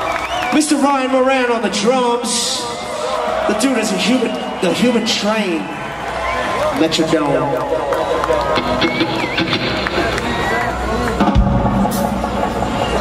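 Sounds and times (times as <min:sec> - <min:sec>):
crowd cheering and shouting: 0:00.0 - 0:13.0
live reggae rock band: 0:07.3 - 0:13.0.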